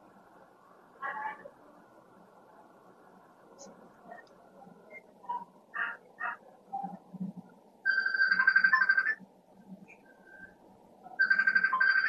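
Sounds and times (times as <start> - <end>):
phone ringtone trilling: 7.9 - 9.2, 11.2 - 12.0.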